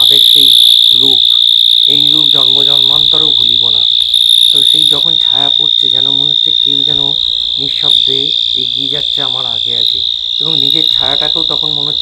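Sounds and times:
person speaking: 0:00.0 - 0:00.3, 0:00.9 - 0:12.0
night insects droning: 0:00.0 - 0:12.0.

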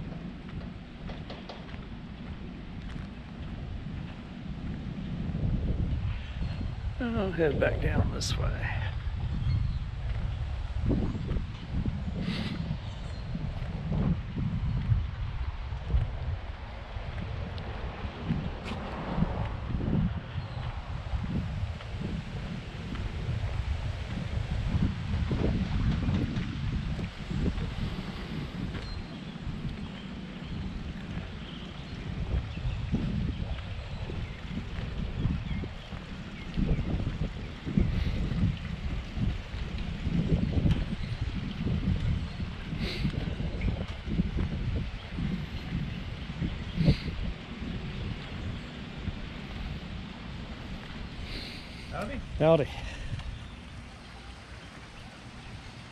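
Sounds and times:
wind buffeting microphone: 0:00.0 - 0:55.9.

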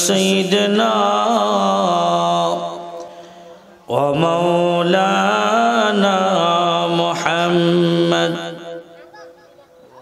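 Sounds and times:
man chanting through a microphone: 0:00.0 - 0:09.0.

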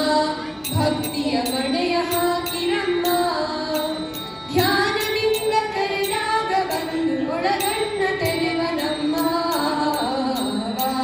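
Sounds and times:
children singing into microphones: 0:00.0 - 0:11.0.

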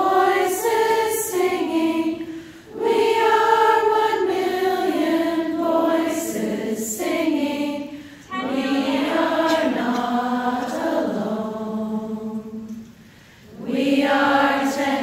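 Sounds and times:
women singing together: 0:00.0 - 0:15.0.

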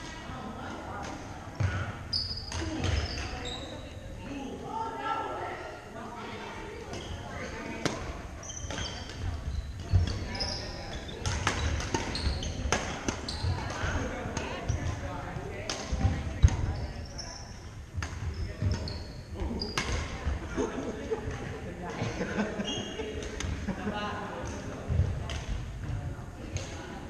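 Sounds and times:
voices in large hall: 0:00.0 - 0:27.0
shoe squeaks: 0:02.1 - 0:04.0, 0:08.4 - 0:13.7, 0:16.7 - 0:17.6, 0:18.3 - 0:19.9, 0:22.6 - 0:23.0
racquets striking shuttlecock: 0:11.2 - 0:15.0.

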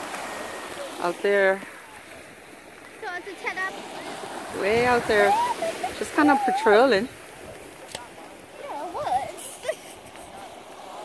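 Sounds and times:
shallow sea water washing: 0:00.0 - 0:11.0.

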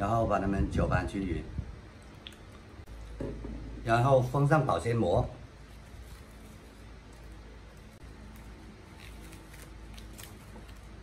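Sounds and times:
low room hum: 0:00.0 - 0:11.0
plastic cling film crinkling: 0:05.5 - 0:11.0.

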